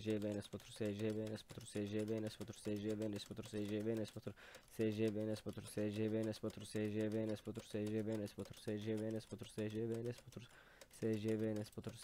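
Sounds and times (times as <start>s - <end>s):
keyboard keys clicking: 0.0s - 12.0s.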